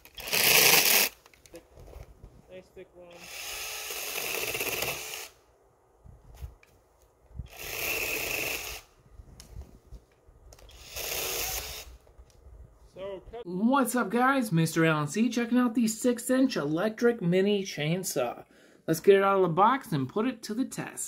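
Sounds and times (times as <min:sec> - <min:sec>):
mini chainsaw running: 0:00.0 - 0:01.2, 0:03.2 - 0:05.4, 0:07.5 - 0:08.9, 0:10.7 - 0:11.9.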